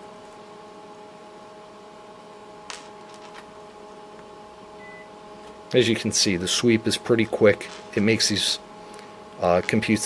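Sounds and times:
cooling fan hum: 0.0s - 10.0s.

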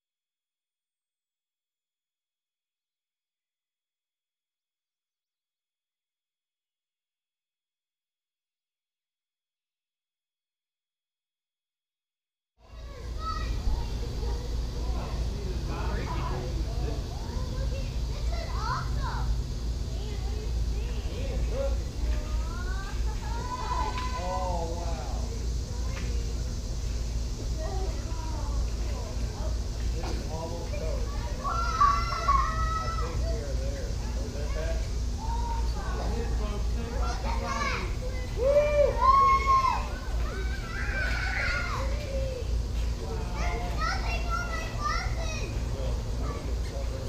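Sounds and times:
distant people calling out: 12.6s - 47.0s.

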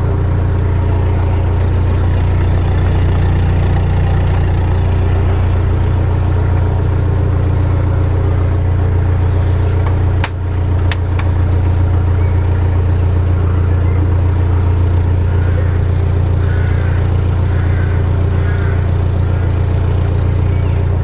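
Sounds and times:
diesel engine running steadily: 0.0s - 21.0s.

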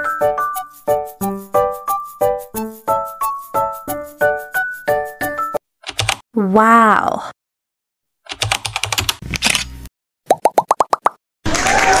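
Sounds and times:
keyboard typing clicks: 8.3s - 9.7s.

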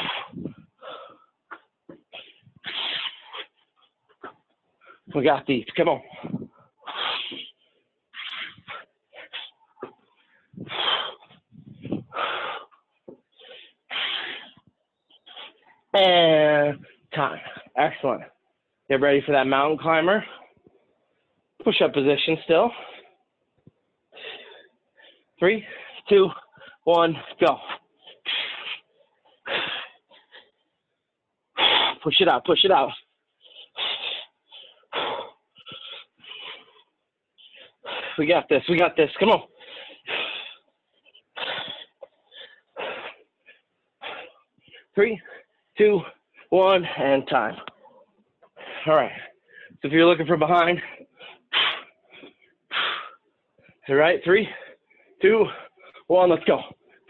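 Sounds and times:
man breathing heavily: 0.0s - 5.2s, 6.0s - 15.9s, 20.1s - 20.6s, 22.5s - 23.3s, 24.1s - 30.8s, 31.5s - 32.0s, 32.9s - 38.4s, 39.3s - 49.8s, 50.6s - 53.8s, 54.4s - 57.0s.

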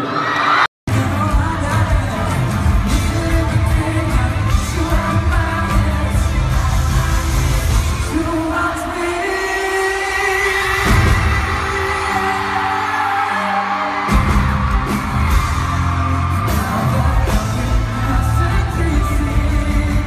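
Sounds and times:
drums: 0.0s - 20.0s
live pop band playing: 0.0s - 20.0s
bass guitar: 0.9s - 8.3s, 14.1s - 20.0s
man singing: 0.9s - 13.9s, 15.9s - 20.0s.

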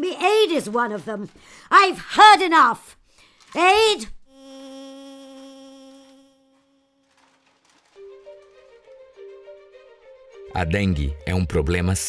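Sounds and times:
mosquito wing buzz: 4.3s - 7.1s.

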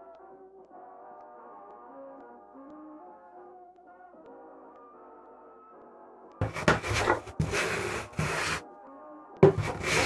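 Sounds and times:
hand plane cutting wood: 6.4s - 8.6s, 9.4s - 10.0s.

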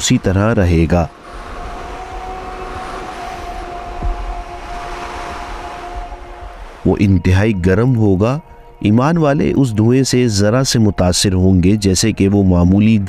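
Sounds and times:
narrator speaking: 0.0s - 1.1s, 6.8s - 13.0s
low rumble: 0.0s - 9.5s
faint held tones: 1.0s - 9.6s.

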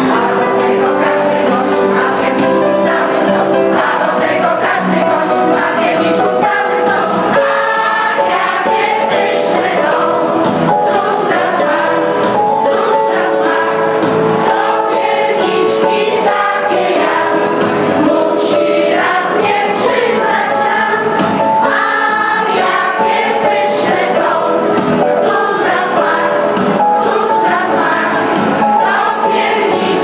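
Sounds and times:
choir singing a carol: 0.0s - 30.0s.

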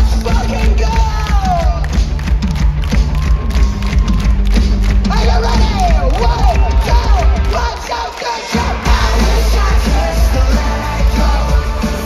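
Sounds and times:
bass guitar: 0.0s - 7.9s, 8.6s - 12.0s
drums: 0.0s - 12.0s
live rock band playing: 0.0s - 12.0s.

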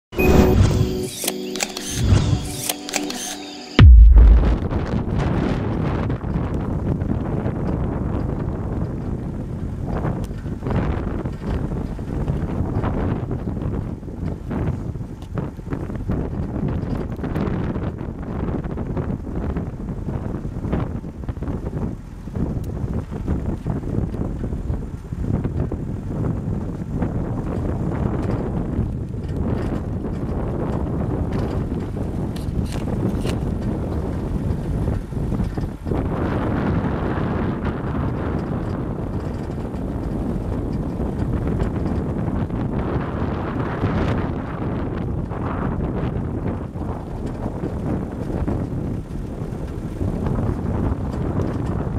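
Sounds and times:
short music intro: 0.1s - 5.0s
loud low boom: 3.8s - 5.3s
car engine and tyre rumble: 6.2s - 51.9s.

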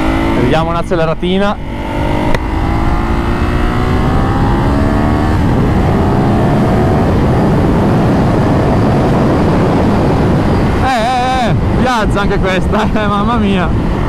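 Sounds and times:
motorcycle engine accelerating: 0.0s - 14.0s
wind noise: 0.0s - 14.0s.

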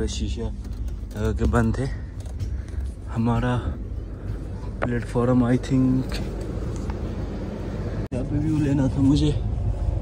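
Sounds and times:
train rumble inside coach: 0.0s - 10.0s.

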